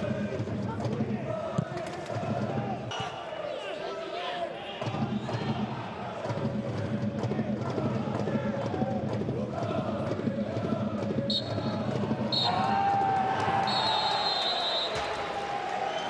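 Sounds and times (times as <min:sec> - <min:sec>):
stadium crowd chanting and shouting: 0:00.0 - 0:16.0
referee whistle blasts: 0:11.3 - 0:11.7, 0:12.3 - 0:12.8, 0:13.6 - 0:15.2.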